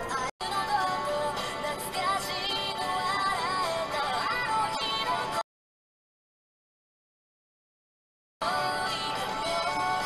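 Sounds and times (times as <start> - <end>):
synthesized singing voice music: 0.0 - 5.4, 8.4 - 10.0.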